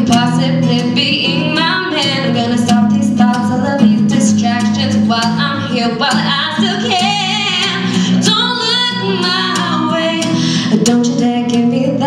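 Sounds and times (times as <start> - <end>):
acoustic guitar: 0.0 - 12.0
woman singing pop ballad: 0.0 - 12.0.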